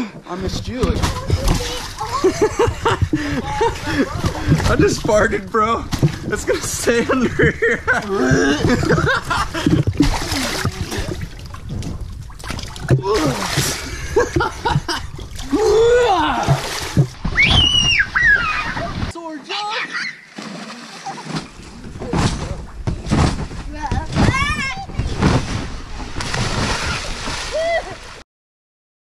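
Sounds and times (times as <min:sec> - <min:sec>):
water splashing: 0:00.0 - 0:28.2
man laughing: 0:06.5 - 0:09.9, 0:13.8 - 0:15.1.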